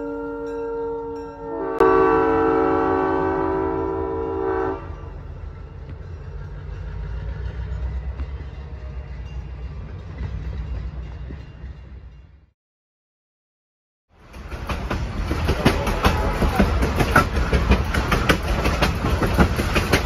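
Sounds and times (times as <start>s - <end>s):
locomotive air horn: 0.0s - 5.1s
freight cars rumbling past: 4.7s - 12.4s.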